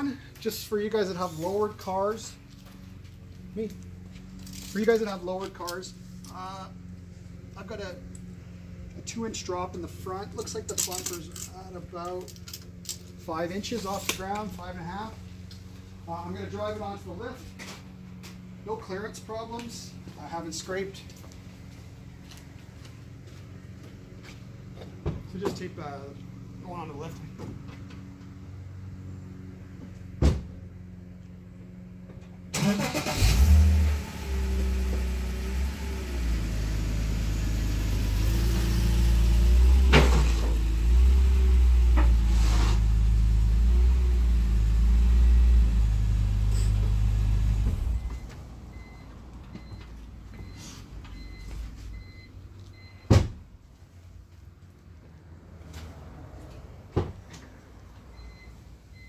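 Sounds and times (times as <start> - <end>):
car engine running at low revs: 0.0 - 53.0.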